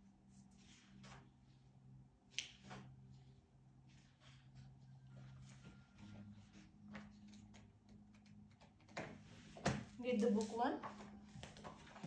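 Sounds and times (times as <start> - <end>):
book pages turning: 3.9 - 12.0.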